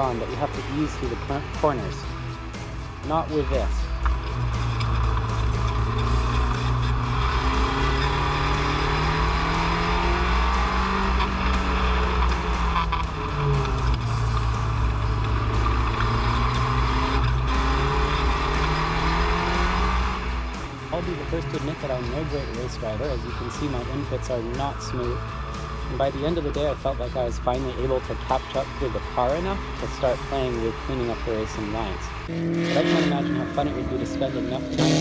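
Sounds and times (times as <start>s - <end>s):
race car engine at speed: 0.0s - 35.0s.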